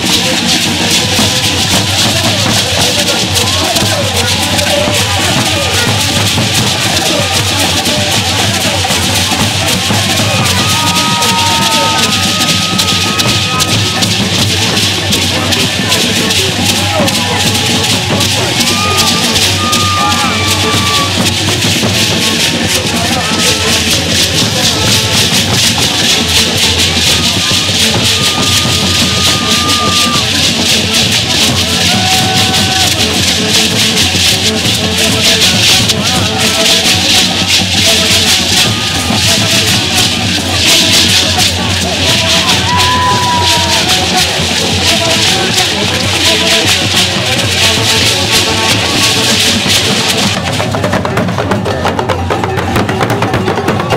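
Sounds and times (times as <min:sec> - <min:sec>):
drumming: 0:00.0 - 0:53.9
gourd rattles shaken: 0:00.0 - 0:53.9
people's voices: 0:00.0 - 0:53.9.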